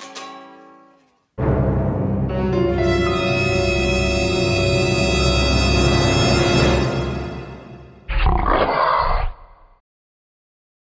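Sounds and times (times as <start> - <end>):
music: 0.0 - 8.1.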